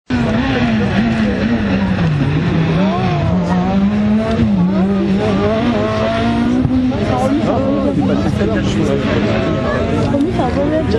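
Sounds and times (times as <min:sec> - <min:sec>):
rally car engine revving: 0:00.1 - 0:10.9.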